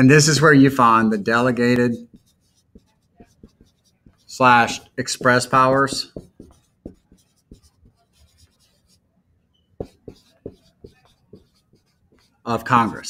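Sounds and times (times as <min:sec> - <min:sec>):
marker writing on whiteboard: 0:01.0 - 0:09.0, 0:09.6 - 0:13.0.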